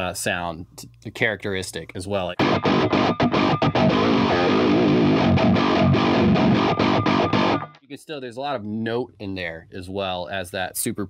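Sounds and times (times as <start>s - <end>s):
distorted electric guitar riff: 2.4s - 7.8s.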